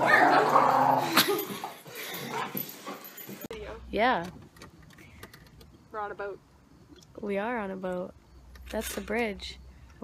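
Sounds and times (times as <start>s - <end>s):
woman's voice: 3.5s - 4.4s, 7.2s - 8.1s, 8.7s - 9.6s.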